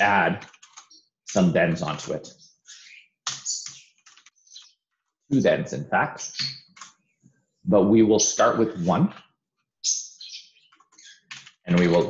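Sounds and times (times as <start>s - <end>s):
high-pitched chirp: 5.3s - 6.7s, 9.8s - 11.2s.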